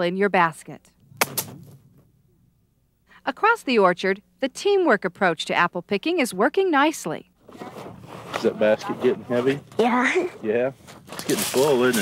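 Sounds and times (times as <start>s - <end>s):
apple thudding on grass: 1.2s - 1.9s.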